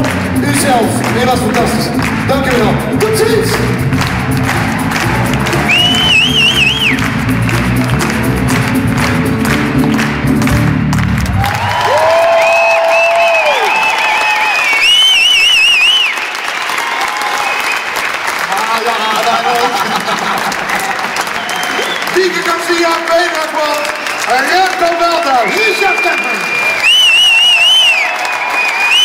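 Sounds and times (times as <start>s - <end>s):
band music: 0.0s - 12.4s
audience applauding and cheering: 0.0s - 29.0s
shrill whistles: 5.6s - 7.0s, 12.4s - 16.5s, 21.3s - 22.2s, 25.4s - 29.0s.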